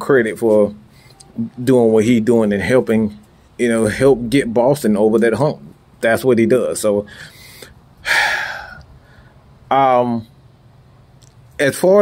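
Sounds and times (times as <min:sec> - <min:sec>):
man breathing into microphone: 0:07.1 - 0:09.5.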